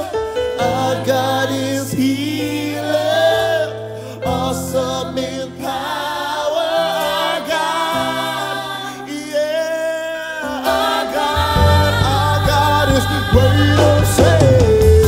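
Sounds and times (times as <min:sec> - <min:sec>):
choir and lead singer singing: 0:00.0 - 0:15.0
low instrumental backing: 0:10.8 - 0:15.0.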